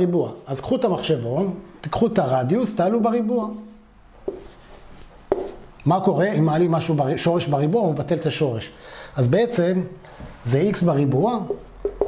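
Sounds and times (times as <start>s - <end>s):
marker scratching on whiteboard: 3.5s - 5.7s, 11.4s - 12.0s
marker tapping whiteboard: 4.2s - 4.6s, 5.3s - 5.6s, 11.4s - 12.0s.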